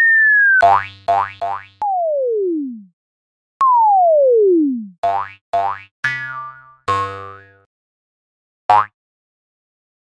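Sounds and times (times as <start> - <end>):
cartoon whistle tone: 0.0 - 0.7.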